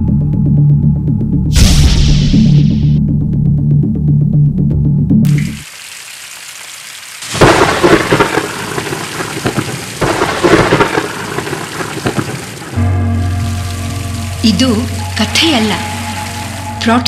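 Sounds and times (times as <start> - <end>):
heavy rain hissing: 5.3 - 17.0
thunder crash: 7.3 - 12.5
low music drone: 12.7 - 17.0.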